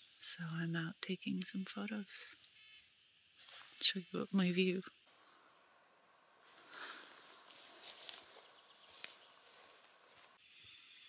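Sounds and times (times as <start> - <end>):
faint outdoor hiss: 0.0 - 11.0
soft rustles: 5.1 - 10.4.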